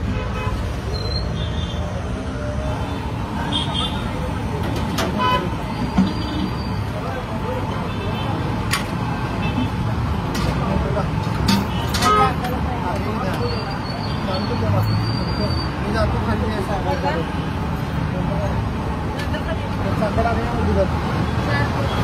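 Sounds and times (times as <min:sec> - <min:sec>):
traffic hum: 0:00.0 - 0:22.0.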